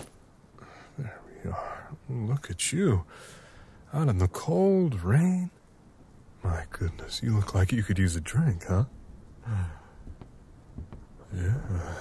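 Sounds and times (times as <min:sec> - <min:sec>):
man sighing: 0:09.4 - 0:10.1.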